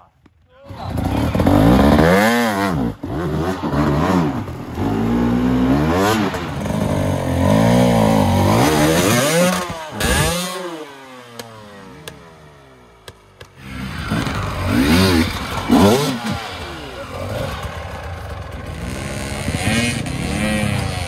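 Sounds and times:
dirt bike engine revving: 0.7s - 21.0s.

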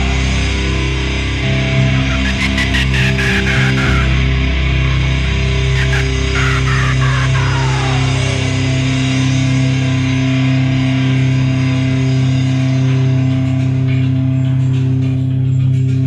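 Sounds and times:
guitar and bass sustained chord: 0.0s - 16.0s.

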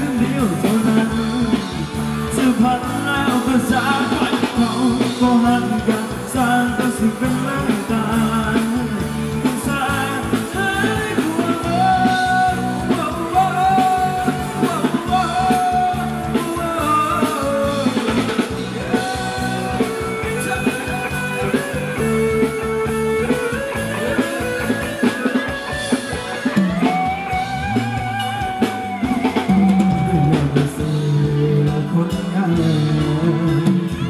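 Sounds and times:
drum kit: 0.0s - 34.0s
guitar: 0.0s - 34.0s
person singing: 0.0s - 34.0s.

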